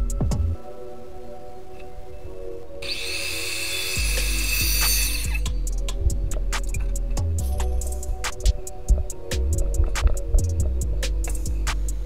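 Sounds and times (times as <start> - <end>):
background music: 0.0 - 12.0
power miter saw cutting wood: 2.8 - 5.4.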